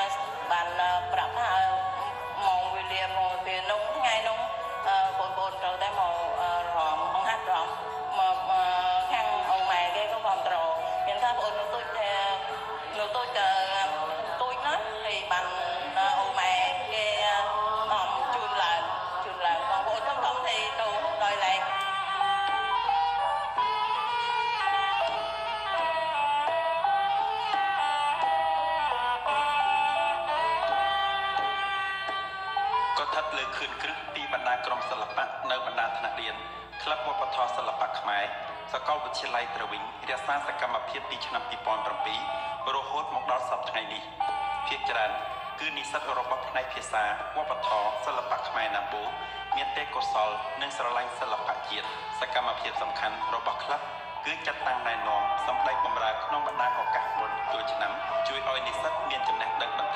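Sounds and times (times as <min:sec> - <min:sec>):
musical accompaniment: 0:00.0 - 0:59.9
reedy oboe melody: 0:20.5 - 0:37.6.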